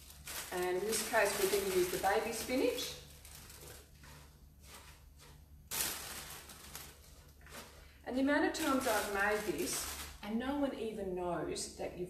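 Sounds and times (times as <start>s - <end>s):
spinach leaves rustling: 0.0s - 10.6s.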